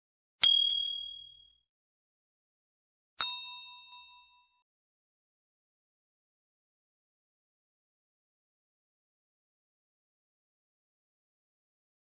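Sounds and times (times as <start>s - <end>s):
ding sound effect: 0.4s - 1.6s, 3.2s - 4.6s.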